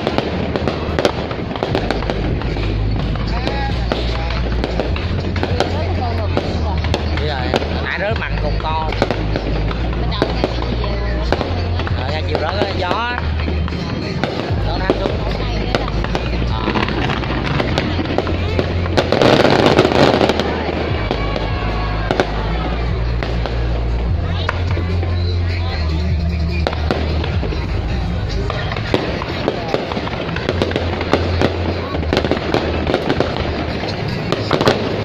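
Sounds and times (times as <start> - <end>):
fireworks bangs and crackles: 0.0 - 35.0.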